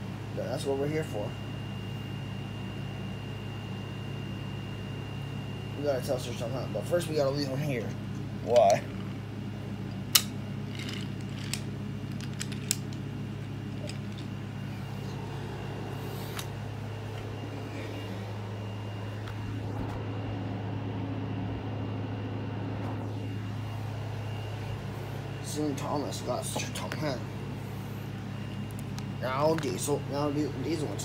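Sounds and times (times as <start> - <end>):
low mechanical hum: 0.0 - 31.0.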